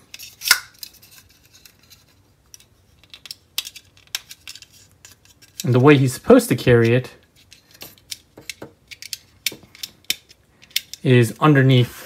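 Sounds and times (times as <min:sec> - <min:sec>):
plastic parts clicking: 0:00.1 - 0:05.7, 0:06.8 - 0:11.1.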